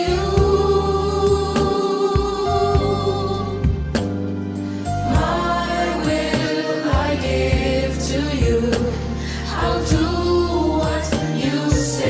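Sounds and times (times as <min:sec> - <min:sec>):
sustained bass: 0:00.0 - 0:11.2
gospel choir singing in harmony: 0:00.0 - 0:12.0.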